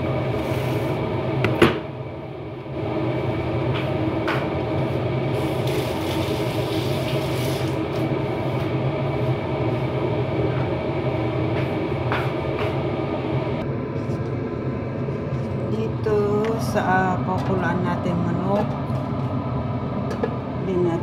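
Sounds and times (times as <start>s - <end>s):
fan motor hum: 0.0s - 21.0s.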